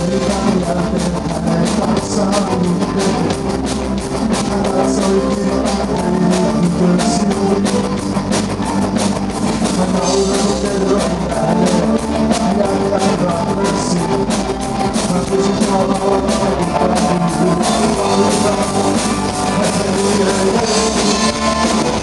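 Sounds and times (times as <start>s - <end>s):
drum kit beat: 0.0s - 22.0s
electric guitars: 0.0s - 22.0s
keyboards: 0.0s - 22.0s.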